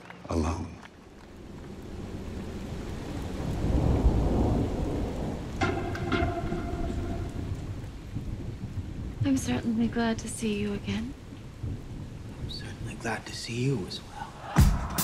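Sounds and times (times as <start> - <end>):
steady rain: 0.0 - 15.0
thunder rumbling: 0.9 - 15.0.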